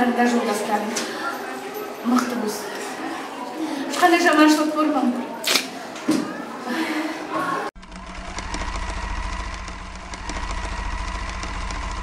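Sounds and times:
low hum: 0:07.8 - 0:12.0
mechanical whir: 0:07.8 - 0:12.0.

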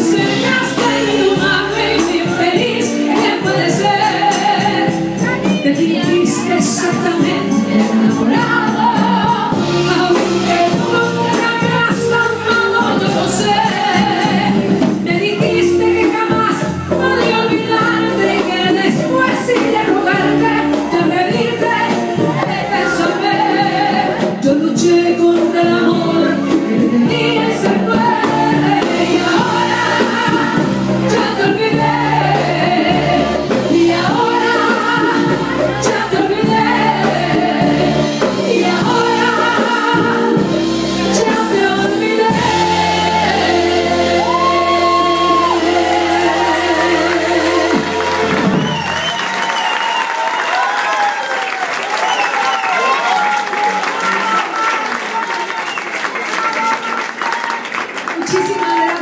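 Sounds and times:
live band playing: 0:00.0 - 0:59.0
audience applauding and cheering: 0:43.8 - 0:59.0.

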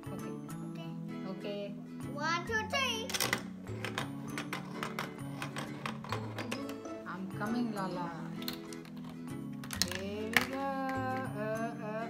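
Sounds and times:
background music: 0:00.0 - 0:12.0
plastic clicks and rattles: 0:03.1 - 0:06.9, 0:08.4 - 0:11.3.

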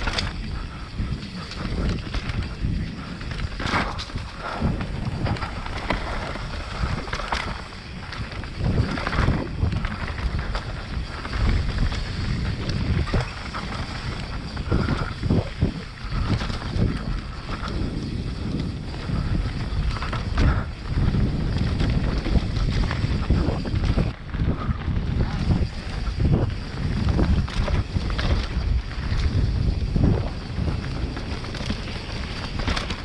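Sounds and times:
bike knocks and rattles: 0:00.0 - 0:33.0
bike tyres rolling over dirt: 0:00.0 - 0:33.0
wind on microphone: 0:00.0 - 0:33.0.

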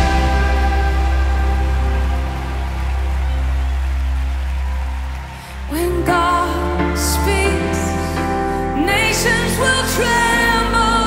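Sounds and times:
low bass notes: 0:00.0 - 0:05.2
band playing sustained chords: 0:00.0 - 0:05.4.

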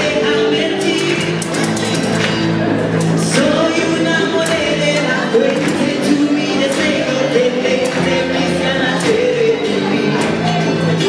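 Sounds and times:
acoustic band playing: 0:00.0 - 0:11.0.

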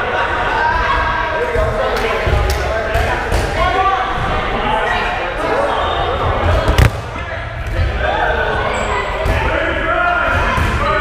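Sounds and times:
players' voices: 0:00.0 - 0:11.0
rubber balls smacking: 0:06.7 - 0:07.3.

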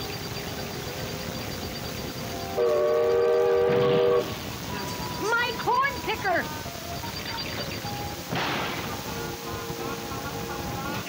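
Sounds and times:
background music: 0:01.9 - 0:11.0
wooden machine crashing: 0:08.3 - 0:08.9.

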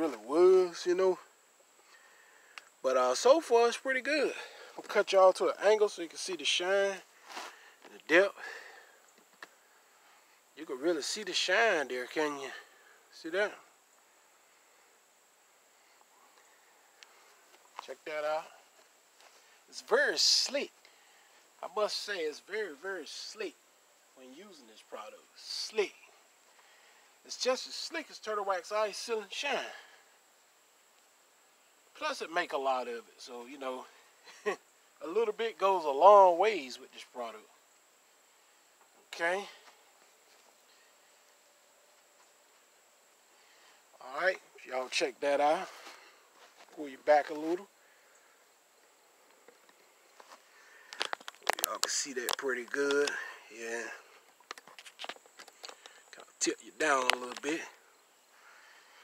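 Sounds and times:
low hiss: 0:00.0 - 0:59.0.

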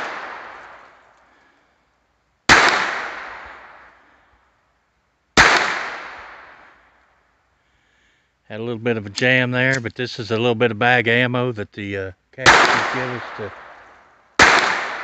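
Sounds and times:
gunshot echo: 0:00.0 - 0:01.0, 0:02.5 - 0:04.0, 0:05.4 - 0:06.8, 0:12.4 - 0:15.0
pistol shots: 0:00.0 - 0:01.0, 0:02.5 - 0:03.9, 0:05.4 - 0:06.7, 0:12.4 - 0:15.0.

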